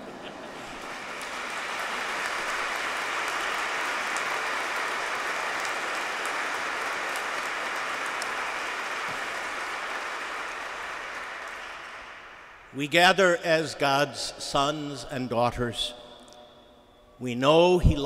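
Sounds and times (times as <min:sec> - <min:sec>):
congregation applauding: 0:00.0 - 0:13.3.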